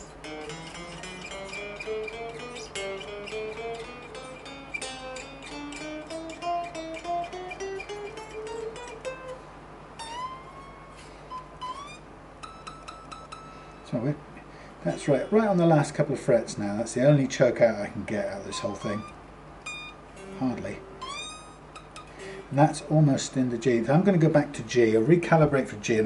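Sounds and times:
electric guitar notes bent upward: 0:10.0 - 0:13.6, 0:18.5 - 0:22.4.

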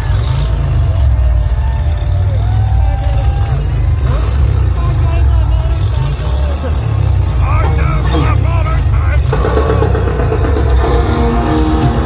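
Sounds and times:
crowd shouting: 0:00.0 - 0:12.0
motorcycle engine running: 0:00.0 - 0:12.0.

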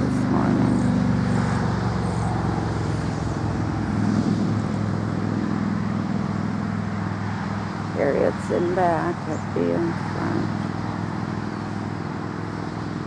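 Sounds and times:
vehicle engine humming: 0:00.0 - 0:13.0
small birds chirping: 0:07.9 - 0:13.0.

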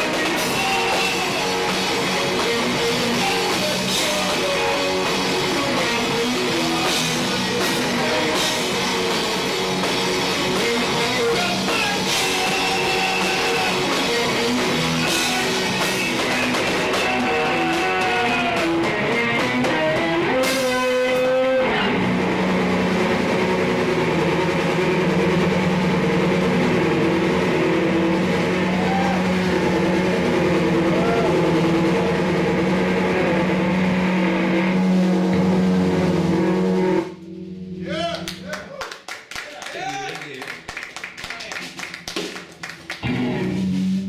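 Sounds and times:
person singing: 0:00.0 - 0:02.0, 0:02.6 - 0:08.3, 0:10.6 - 0:21.9
live rock song: 0:00.0 - 0:38.5, 0:41.4 - 0:44.0.

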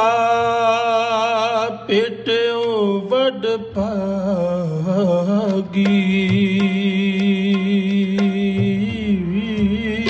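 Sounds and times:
man singing a hymn: 0:00.0 - 0:10.0.

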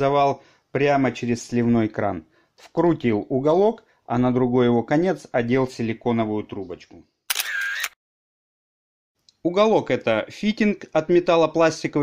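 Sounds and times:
camera shutter snap: 0:07.3 - 0:08.0.

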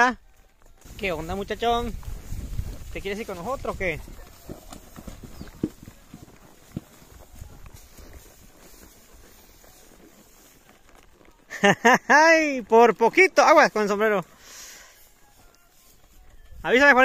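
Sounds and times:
horse hooves thudding on mud: 0:00.0 - 0:17.0
man's voice: 0:00.9 - 0:02.0, 0:02.9 - 0:04.0, 0:16.4 - 0:17.0.

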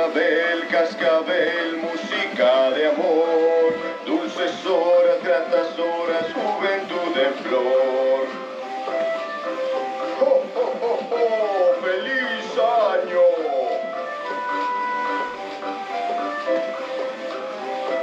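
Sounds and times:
christmas tune from toy speaker: 0:00.0 - 0:18.0.

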